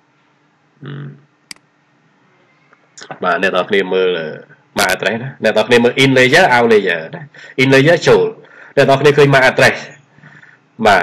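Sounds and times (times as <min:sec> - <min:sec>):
man humming mm: 0:00.8 - 0:01.2.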